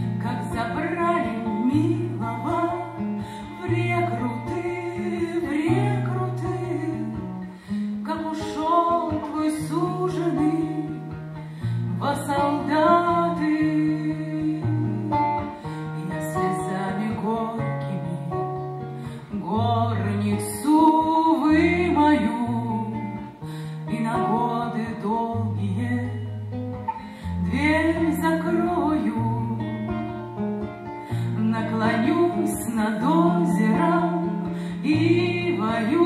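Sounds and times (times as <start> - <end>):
woman singing with vibrato: 0.0 - 11.2, 11.9 - 26.3, 27.2 - 30.0, 31.2 - 36.0
acoustic guitar: 0.0 - 36.0.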